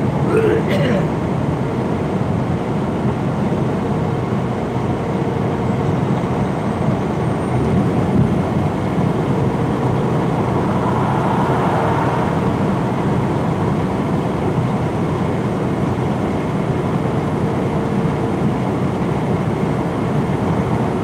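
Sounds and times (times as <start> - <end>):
diesel engine drone: 0.0 - 21.0.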